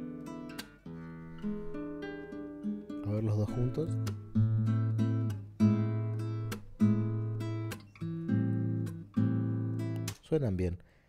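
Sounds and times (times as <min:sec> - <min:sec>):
acoustic guitar strummed chords: 0:00.0 - 0:10.2.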